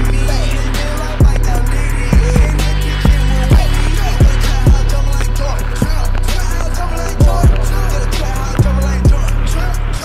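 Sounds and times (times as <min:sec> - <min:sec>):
deep sustained bass line: 0:00.0 - 0:10.0
hi-hat ticks: 0:00.0 - 0:10.0
booming kick drums: 0:02.1 - 0:06.5, 0:07.2 - 0:08.0.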